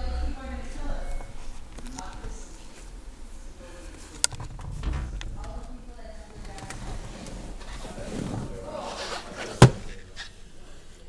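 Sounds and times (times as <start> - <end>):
faint indistinct voices: 0.0 - 11.0
sharp thump: 4.3 - 6.7.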